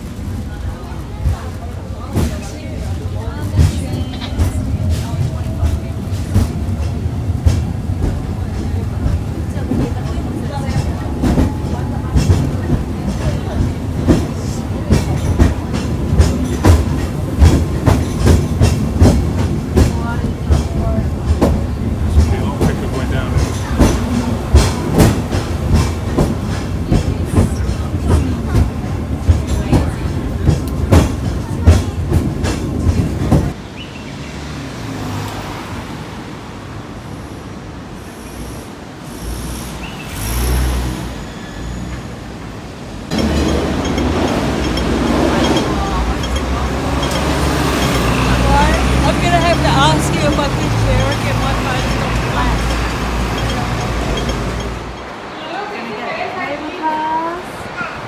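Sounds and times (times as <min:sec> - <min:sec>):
rumble of wheels on rail: 0:00.0 - 0:58.0
sharp rail clacks: 0:43.1 - 0:55.2.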